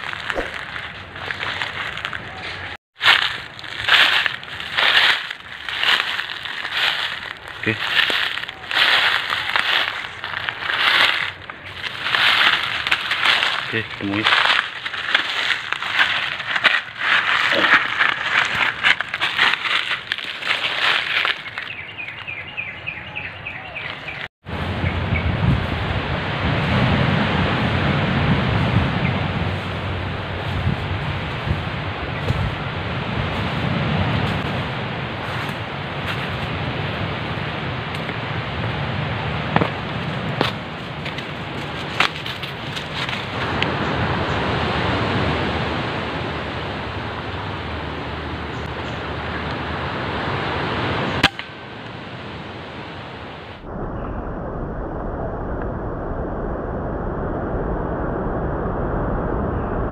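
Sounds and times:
dry leaves crackling and rustling: 0:00.0 - 0:22.6, 0:28.6 - 0:37.2, 0:39.6 - 0:44.0
footsteps crunching in undergrowth: 0:00.0 - 0:23.0, 0:29.4 - 0:37.1, 0:39.4 - 0:43.8
wind noise on microphone: 0:24.0 - 0:59.9
low rumble: 0:53.6 - 0:59.9.

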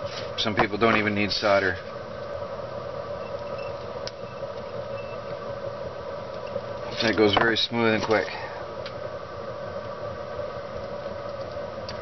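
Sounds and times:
mechanical hum: 0:00.0 - 0:12.0
faint high chirps: 0:03.2 - 0:05.3.

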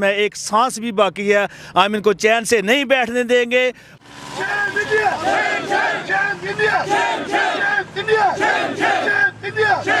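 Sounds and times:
crowd of demonstrators: 0:04.2 - 0:10.0
slogans shouted through megaphone: 0:04.3 - 0:10.0.

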